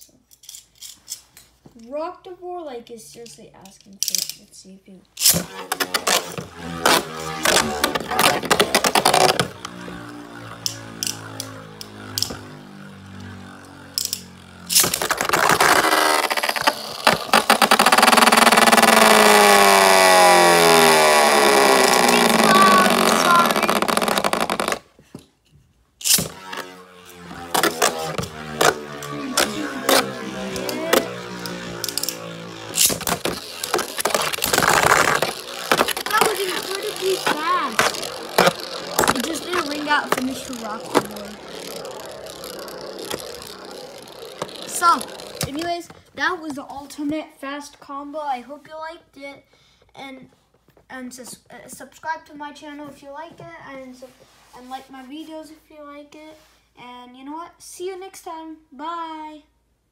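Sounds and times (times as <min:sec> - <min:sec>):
spinning tops clacking: 0:05.2 - 0:20.0, 0:26.0 - 0:45.7
spinning tops whirring: 0:05.2 - 0:24.9, 0:26.0 - 0:45.9.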